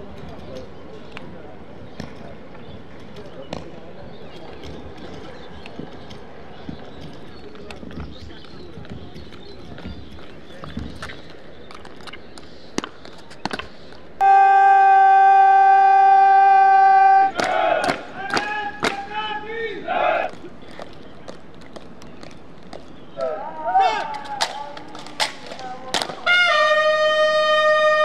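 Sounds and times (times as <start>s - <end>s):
crowd murmuring: 0.0s - 12.8s, 13.8s - 21.3s, 23.0s - 28.0s
bugle long held note: 14.2s - 17.4s, 26.2s - 28.0s.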